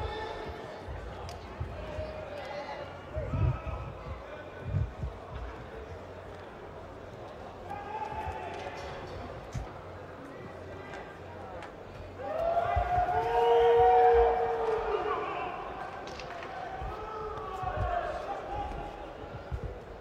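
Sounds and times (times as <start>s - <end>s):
voices shouting in a hall: 0.0s - 5.2s, 5.8s - 20.0s.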